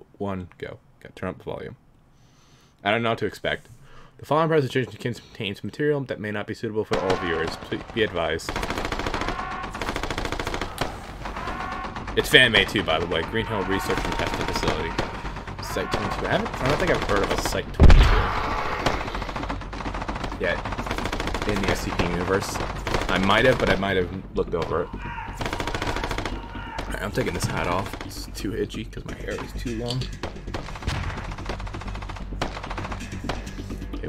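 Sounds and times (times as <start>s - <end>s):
rapid machine-gun fire: 6.9s - 24.0s, 25.3s - 28.3s, 30.2s - 33.8s
rapid gunfire: 6.9s - 28.4s, 30.2s - 33.8s
loud explosion boom: 17.8s - 18.9s.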